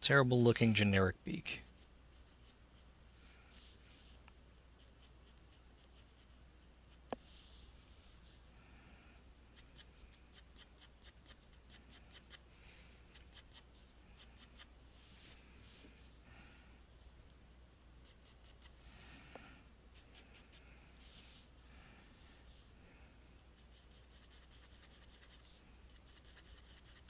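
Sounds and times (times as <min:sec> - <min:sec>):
pencil sketching on paper: 0:01.6 - 0:02.9, 0:04.8 - 0:08.0, 0:09.8 - 0:12.4, 0:13.1 - 0:15.8, 0:18.0 - 0:18.8, 0:23.6 - 0:27.0.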